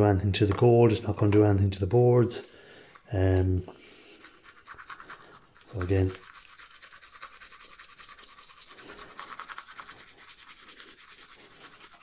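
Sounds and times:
fast scrubbing of circuit boards: 4.0 - 12.0.

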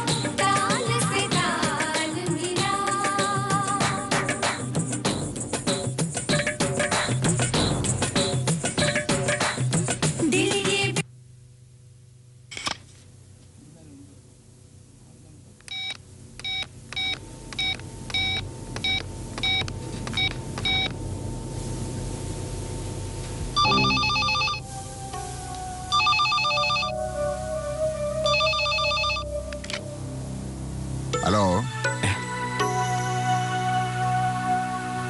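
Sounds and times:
telephone key beeps: 15.7 - 20.9
electronic telephone ringing: 23.6 - 24.7, 25.9 - 27.0, 28.3 - 29.3.

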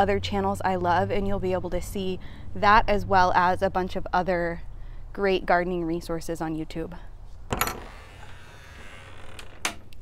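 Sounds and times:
door creaking: 7.5 - 10.0.

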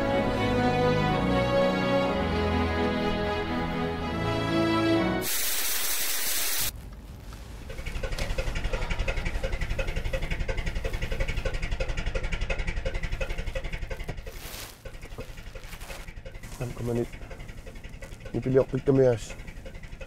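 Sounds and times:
loud hiss: 5.2 - 6.7
car engine idling: 6.6 - 20.0.

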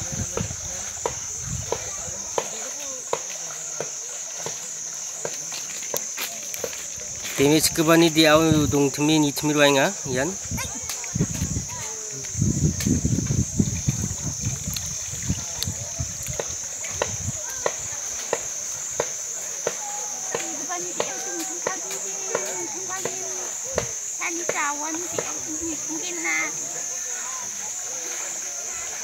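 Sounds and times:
insects droning: 0.0 - 29.0.

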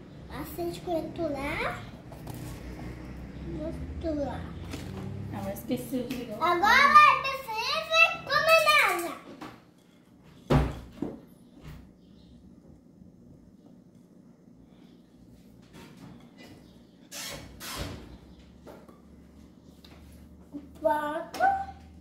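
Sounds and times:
child's voice: 0.3 - 2.0, 3.5 - 4.7, 6.3 - 9.4, 20.5 - 22.0.

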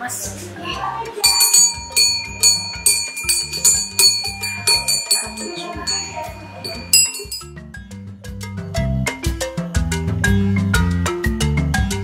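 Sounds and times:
background music with beat: 1.0 - 12.0
metal bells ringing: 1.2 - 7.6.

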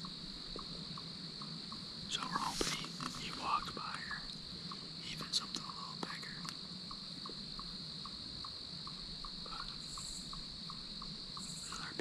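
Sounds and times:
insect chirping: 0.0 - 12.0
insects high-pitched drone: 0.0 - 12.0.

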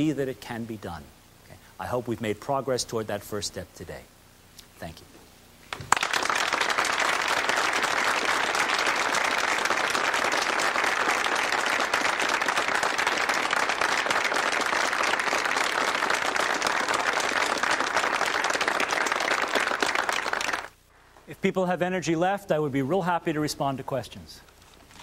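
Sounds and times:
audience applauding: 5.7 - 20.8.

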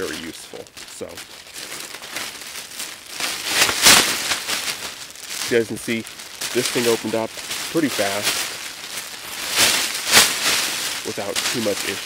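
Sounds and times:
foil blanket rustling and crinkling: 0.0 - 12.0.

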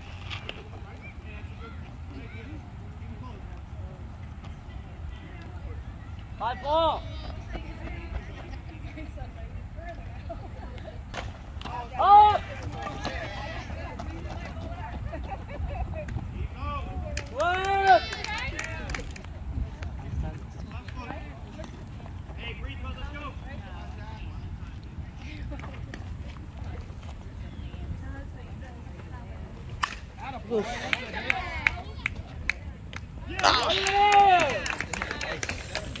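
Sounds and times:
faint chatter: 0.0 - 36.0
people clapping: 17.1 - 19.9, 30.7 - 36.0.

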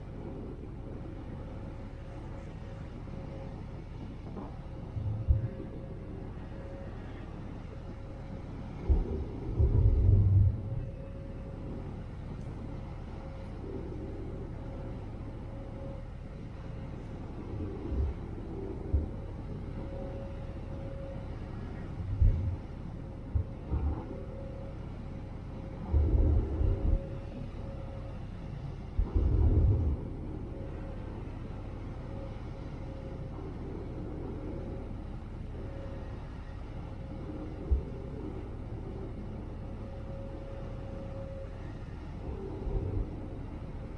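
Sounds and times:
ferry engines humming: 0.0 - 43.9
wind buffeting microphone: 0.0 - 43.9.

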